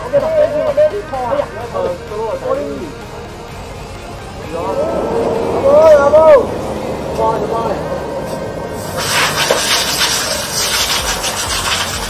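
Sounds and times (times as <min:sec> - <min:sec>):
quick rubbing strokes: 0:08.3 - 0:12.0.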